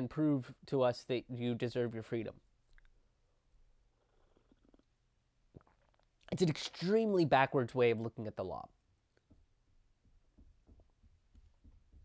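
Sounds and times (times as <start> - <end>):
man swallowing from a mug: 4.0 - 6.3.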